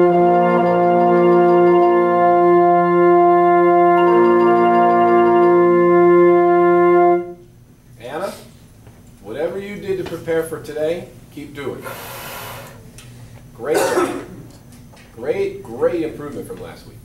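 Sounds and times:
wind ensemble sustained chord: 0:00.0 - 0:07.4.

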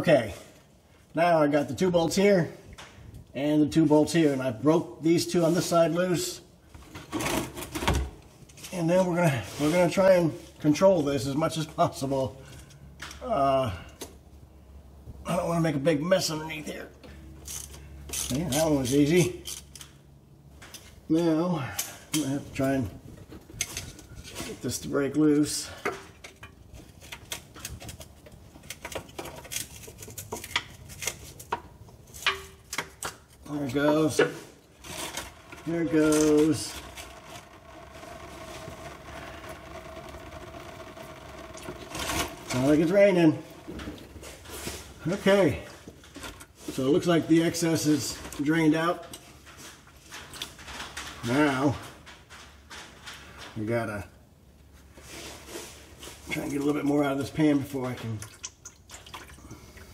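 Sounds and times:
fluid trickling and dripping: 0:58.2 - 0:59.9.

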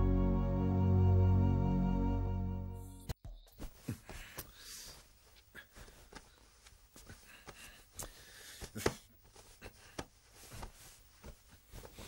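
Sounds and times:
soft knocks and shuffles: 0:03.5 - 0:12.0
bedclothes rustling: 0:03.6 - 0:12.0.

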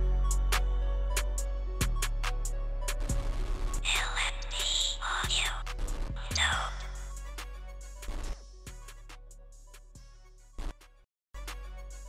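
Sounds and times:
low bass notes: 0:00.0 - 0:08.4
whispered voice: 0:03.8 - 0:07.1.

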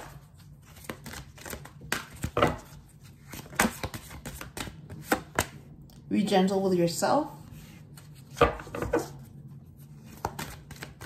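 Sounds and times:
cards shuffled with crisp slaps: 0:00.0 - 0:05.6, 0:09.9 - 0:11.0.

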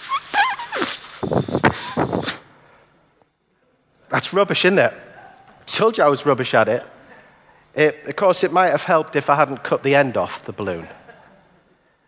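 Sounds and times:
balloon squealing: 0:00.0 - 0:02.4
breathy puffs: 0:00.4 - 0:02.9.

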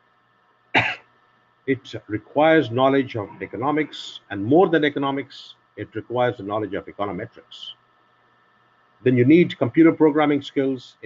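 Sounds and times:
man coughing: 0:00.8 - 0:01.1.

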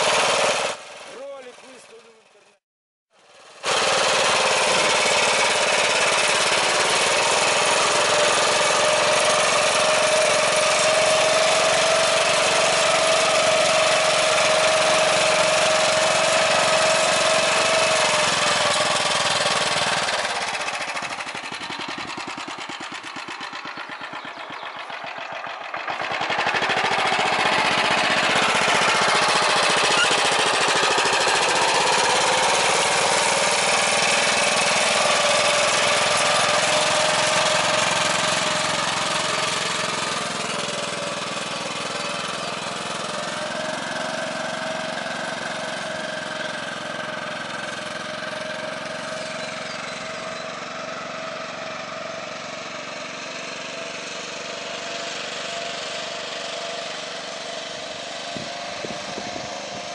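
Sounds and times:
tractor engine running under load: 0:03.2 - 0:59.9.

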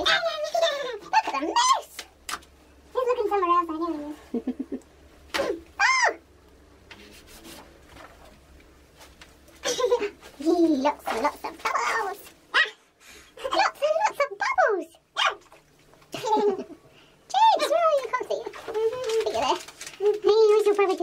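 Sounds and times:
child vocalising and laughing: 0:00.0 - 0:01.9, 0:05.5 - 0:06.2, 0:09.6 - 0:10.3, 0:16.1 - 0:16.8.

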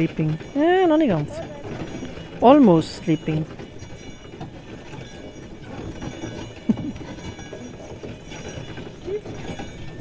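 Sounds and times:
hooves clip-clopping on snow: 0:00.0 - 0:10.0
sleigh rumbling and rattling: 0:00.0 - 0:10.0.

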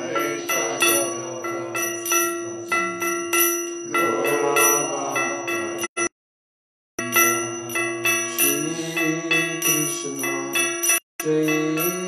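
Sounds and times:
metal bells struck: 0:00.0 - 0:06.1, 0:07.0 - 0:12.0
steady held tone: 0:00.0 - 0:06.2, 0:07.0 - 0:12.0.

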